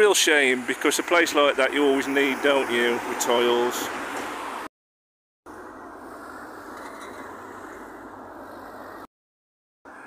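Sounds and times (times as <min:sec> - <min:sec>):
road traffic hiss: 0:00.0 - 0:04.7, 0:05.5 - 0:09.0.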